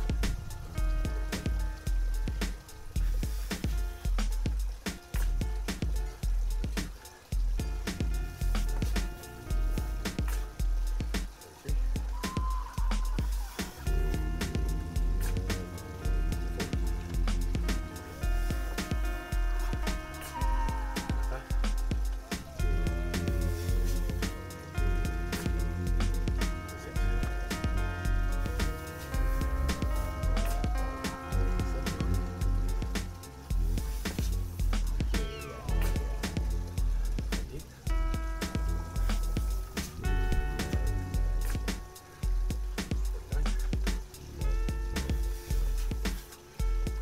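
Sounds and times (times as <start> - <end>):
music with heavy bass beat: 0.0 - 47.0.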